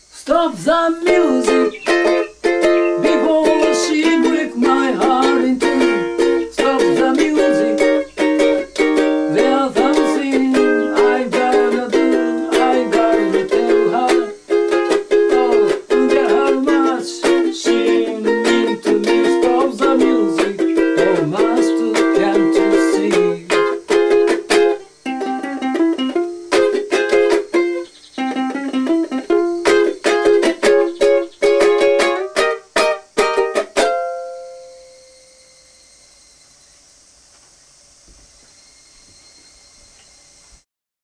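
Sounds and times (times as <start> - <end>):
ukulele strumming: 0.4 - 35.0.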